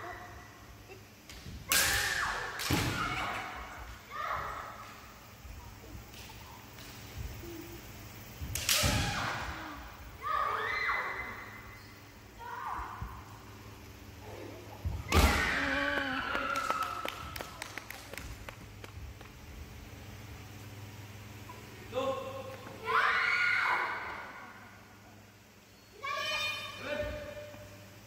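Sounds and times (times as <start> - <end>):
bamboo swords striking: 1.7 - 3.1.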